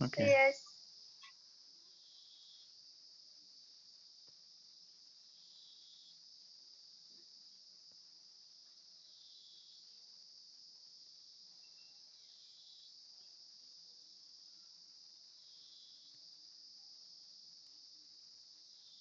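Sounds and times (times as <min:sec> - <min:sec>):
faint high-pitched hiss: 0:00.0 - 0:19.0.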